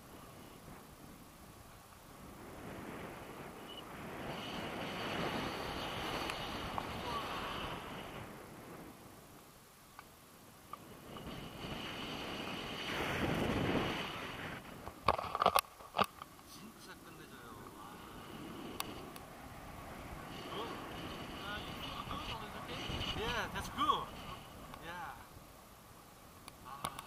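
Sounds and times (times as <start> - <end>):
wind rushing over microphone: 0.0 - 9.4, 10.7 - 15.6, 16.7 - 25.6.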